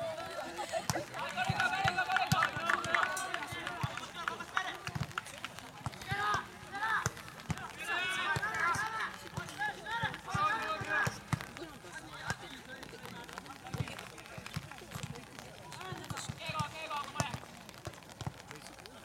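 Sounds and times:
players calling out: 0.0s - 17.5s.

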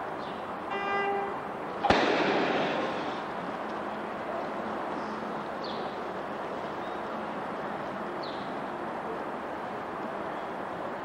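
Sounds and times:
starter's pistol crack: 1.8s - 2.9s.

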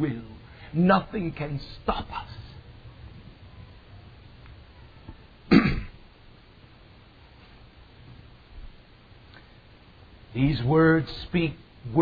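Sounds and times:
man clearing his throat: 5.5s - 6.0s.

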